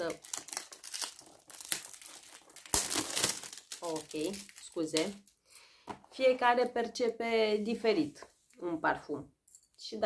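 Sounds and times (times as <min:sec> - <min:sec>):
packaging rustling and crinkling: 0:00.0 - 0:05.4.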